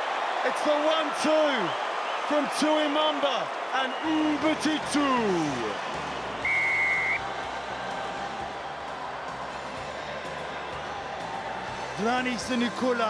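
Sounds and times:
stadium crowd noise: 0:00.0 - 0:13.0
referee's whistle: 0:06.4 - 0:07.2.

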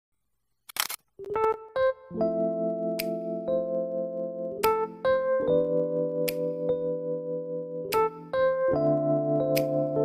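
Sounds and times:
camera shutter click: 0:00.7 - 0:01.0.

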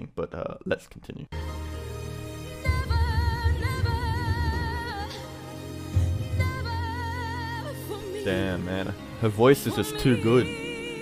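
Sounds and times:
low musical accompaniment: 0:01.3 - 0:11.0.

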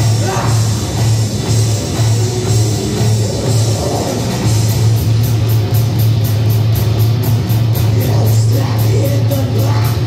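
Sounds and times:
drums: 0:00.0 - 0:10.0
electric guitars and bass: 0:00.0 - 0:10.0.

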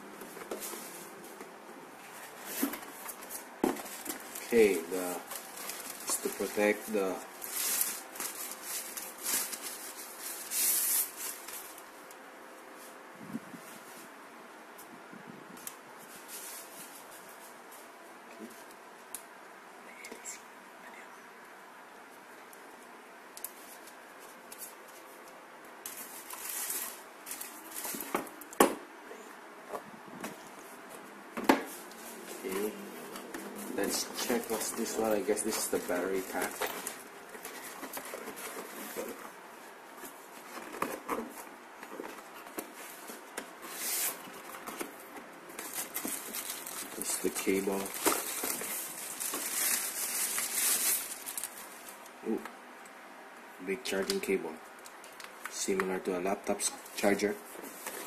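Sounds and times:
packaging rustling and crinkling: 0:02.0 - 0:12.0, 0:23.5 - 0:28.7, 0:30.2 - 0:52.2.

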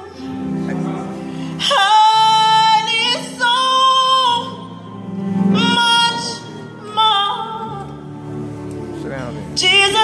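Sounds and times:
soft keyboard chords: 0:00.0 - 0:10.0
woman singing: 0:01.6 - 0:08.2, 0:09.5 - 0:10.0.

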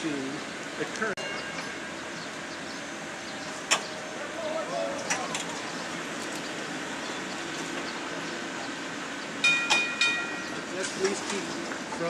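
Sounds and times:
streetcar rumbling on rails: 0:00.0 - 0:12.0
streetcar gong ringing: 0:01.2 - 0:11.6.

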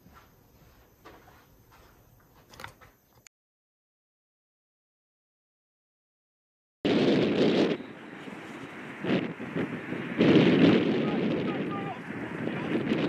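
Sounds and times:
wind buffeting microphone: 0:06.8 - 0:13.0
players' voices: 0:10.8 - 0:13.0.

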